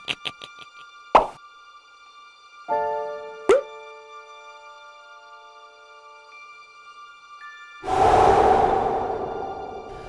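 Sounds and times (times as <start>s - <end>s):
soft background music: 0.0s - 7.9s
cartoon plop sound effects: 3.5s - 3.7s.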